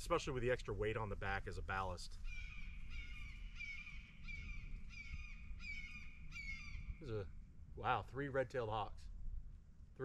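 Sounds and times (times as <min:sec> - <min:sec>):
hawks calling: 0:02.2 - 0:07.2.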